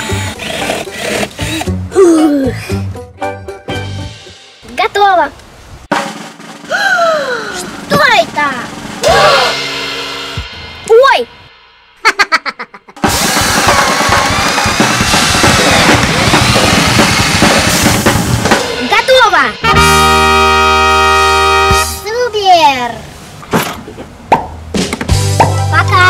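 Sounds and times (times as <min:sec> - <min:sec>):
light background music: 0:00.0 - 0:05.1, 0:24.7 - 0:26.0
busy music track with drums: 0:00.0 - 0:22.4, 0:23.6 - 0:26.0.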